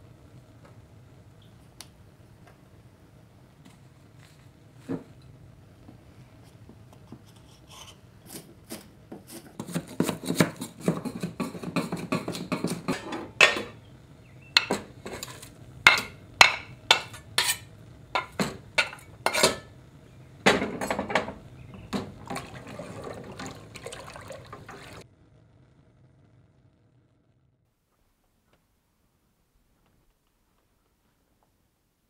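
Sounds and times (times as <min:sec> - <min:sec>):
knife clinking on enamel pot: 0:11.6 - 0:13.8, 0:15.9 - 0:19.7
spoon stirring in a pot: 0:14.6 - 0:19.7.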